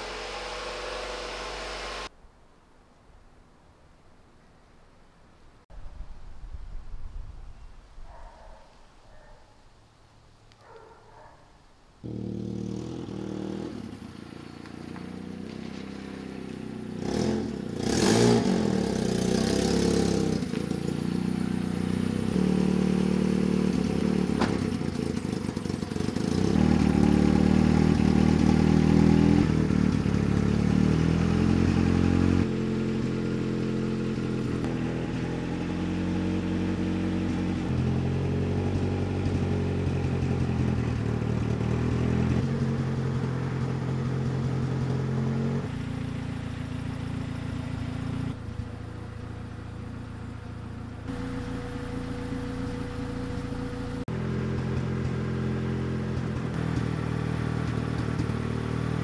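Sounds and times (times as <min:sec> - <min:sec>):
car engine running: 0:00.0 - 0:02.1, 0:12.0 - 0:18.1, 0:18.9 - 0:59.0.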